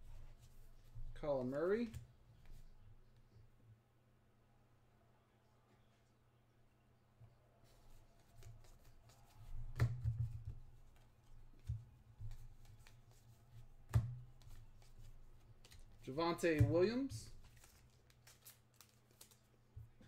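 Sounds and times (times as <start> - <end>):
trading cards rustling: 14.4 - 19.7.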